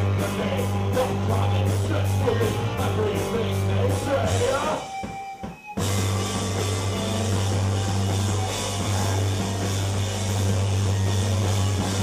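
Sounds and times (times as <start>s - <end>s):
electronic rock band playing: 0.0s - 12.0s
heavy synthesizer bass: 5.9s - 12.0s.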